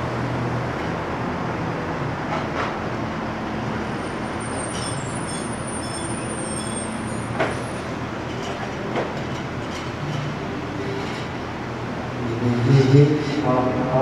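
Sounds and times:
urban traffic rumble: 0.0s - 14.0s.

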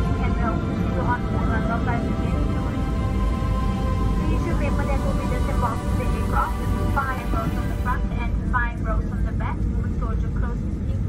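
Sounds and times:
jet engines and wheels rumbling: 0.0s - 11.0s.

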